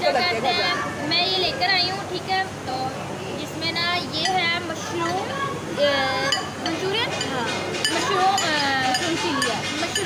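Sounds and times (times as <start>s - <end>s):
cutlery clinking on plates: 6.3s - 10.0s.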